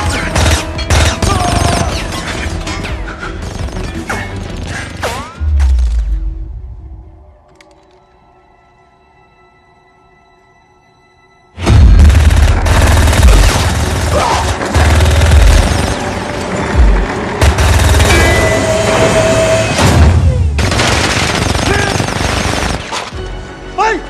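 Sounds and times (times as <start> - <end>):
action film music: 0.0 - 24.0
action sound effects: 11.6 - 20.8.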